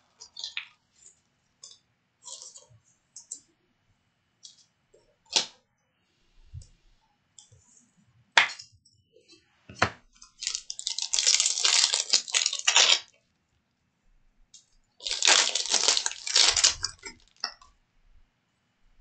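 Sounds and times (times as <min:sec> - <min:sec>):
foil wrapper crinkling and tearing: 0:10.4 - 0:13.1, 0:15.0 - 0:17.5.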